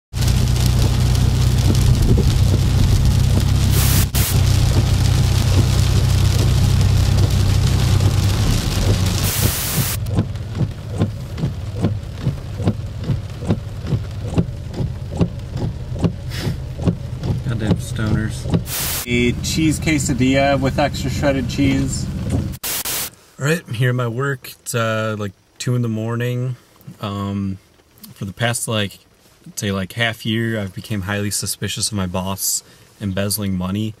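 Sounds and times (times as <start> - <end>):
road and engine rumble: 0.1 - 22.7
heavy rain hissing on car: 0.1 - 34.0
steady ticking: 0.4 - 20.8.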